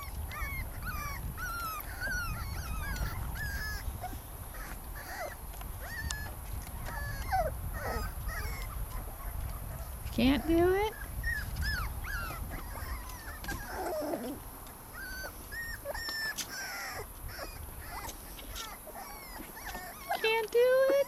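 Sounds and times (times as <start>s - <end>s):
puppies whimpering: 0.0s - 21.0s.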